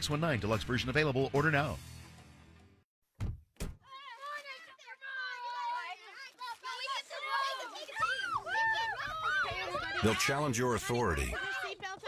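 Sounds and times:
radio commercial music: 0.0s - 2.8s, 10.0s - 11.4s.

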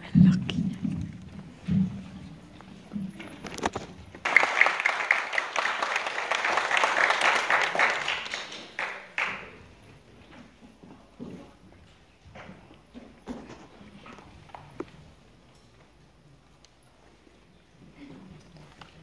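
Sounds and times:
audience applauding: 4.2s - 9.6s.

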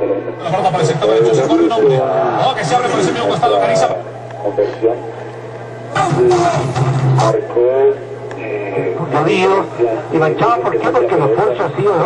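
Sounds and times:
indistinct talking: 0.0s - 12.0s
steady low hum: 0.0s - 12.0s.

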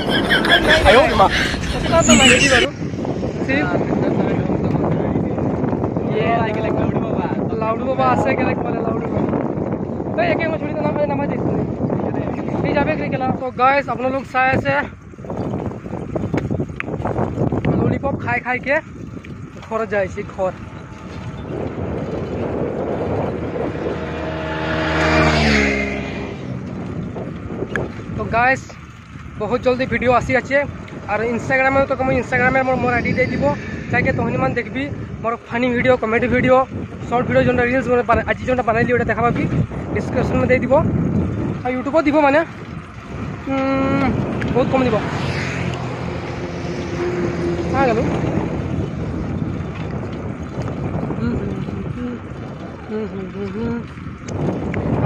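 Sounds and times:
vehicle engine humming: 0.0s - 5.0s, 18.8s - 29.4s, 41.0s - 50.6s
wind rumbling on microphone: 0.0s - 55.0s
vehicle driving past: 20.6s - 27.3s, 31.8s - 35.2s, 44.5s - 49.6s.

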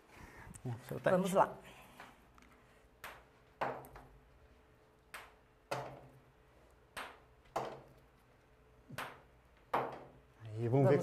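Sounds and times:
ping-pong balls tapping and bouncing: 2.9s - 4.2s, 5.1s - 8.0s, 8.8s - 10.2s.

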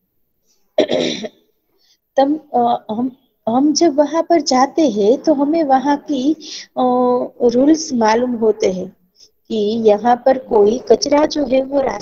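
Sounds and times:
woman clearing her throat: 0.8s - 1.4s.

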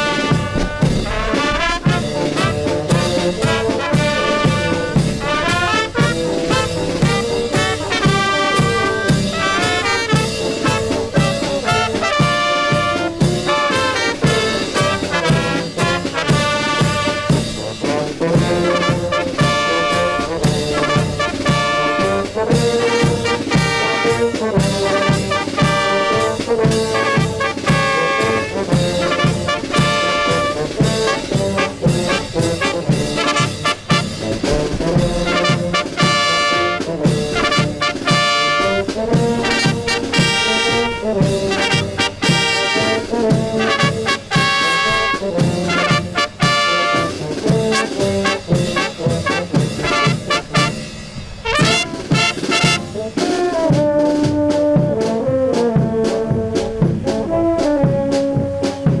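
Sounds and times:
bass drum and cymbal beat: 0.0s - 53.4s
brass band playing: 0.0s - 59.0s.

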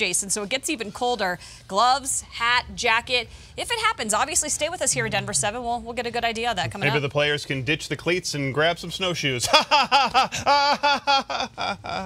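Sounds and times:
people laughing: 9.4s - 12.0s.

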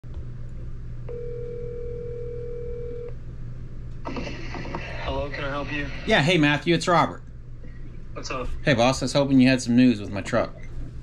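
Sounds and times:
low hum: 0.0s - 11.0s
phone ringback tone: 1.1s - 3.1s.

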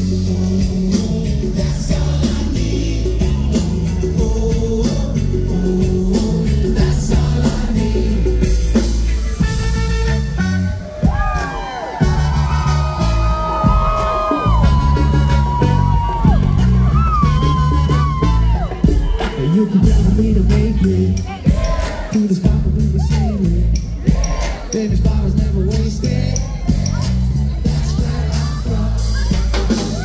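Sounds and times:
reggae rock band playing: 0.0s - 30.0s
trumpet and trombone held notes: 9.3s - 11.0s.

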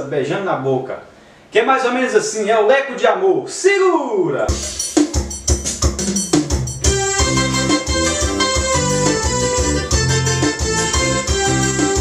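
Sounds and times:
bass and drum rhythm: 4.5s - 12.0s
drum hits: 4.5s - 12.0s
electronic keyboard organ chords: 5.5s - 12.0s.

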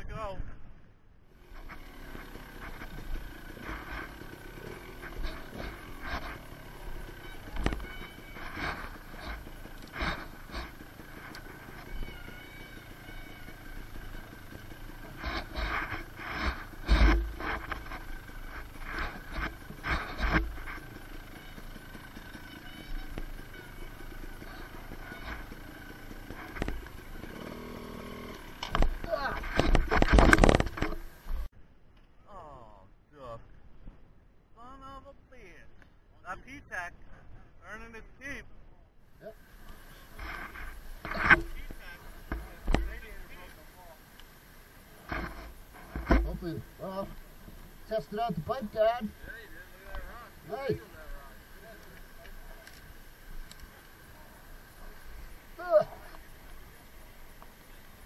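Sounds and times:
rustling: 1.4s - 31.5s, 39.3s - 58.0s
knocks and thumps on a motorbike: 1.7s - 31.5s, 40.2s - 43.0s, 45.0s - 46.7s.

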